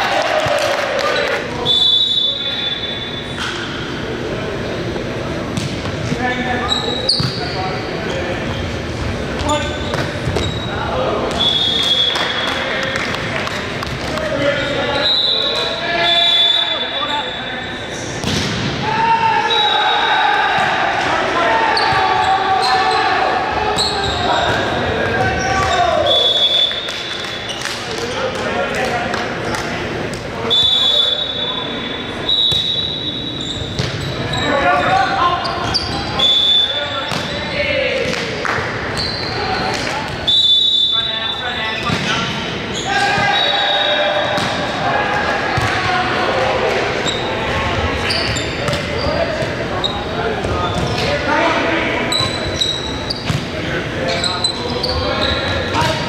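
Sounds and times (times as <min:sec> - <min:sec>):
players shouting: 0:00.0 - 0:01.8, 0:18.8 - 0:27.3, 0:42.7 - 0:48.4
volleyball struck and bouncing: 0:18.2 - 0:18.8.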